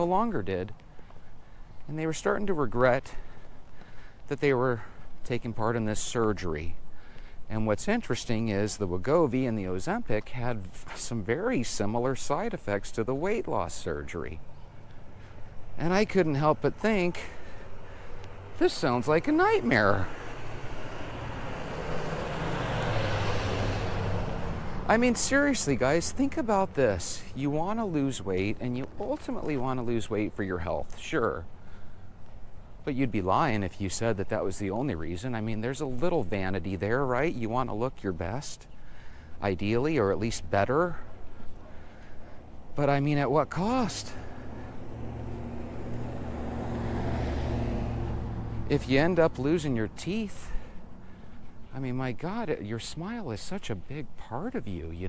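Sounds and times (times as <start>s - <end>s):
road noise: 0.0s - 55.0s
truck engine hum: 11.2s - 30.6s, 39.8s - 55.0s.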